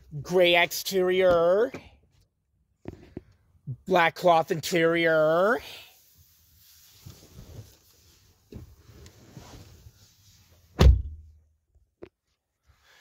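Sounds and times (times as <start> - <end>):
car door shutting: 10.8 - 11.2.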